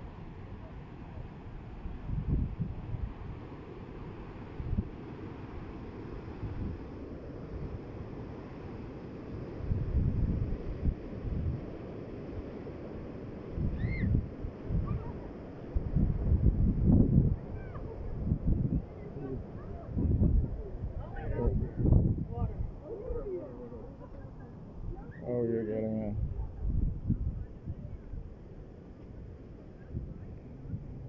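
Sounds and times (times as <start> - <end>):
wind buffeting microphone: 1.5 - 7.9, 9.3 - 12.6, 13.3 - 31.0.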